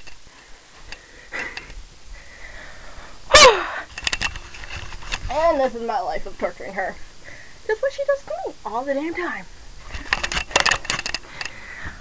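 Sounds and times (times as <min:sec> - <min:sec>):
soft breathy sounds: 0:00.4 - 0:04.0, 0:11.2 - 0:12.0
person crying out: 0:03.3 - 0:03.8.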